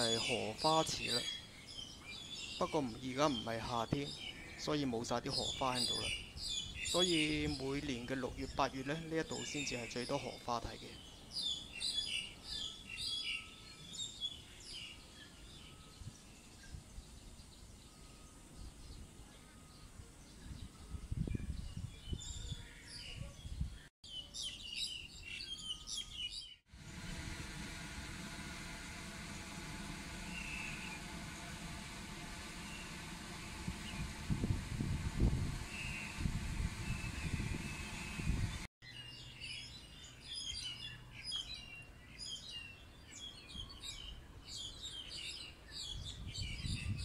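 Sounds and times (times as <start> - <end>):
small birds chirping: 0.0 - 27.0
steady low hum: 26.7 - 38.7.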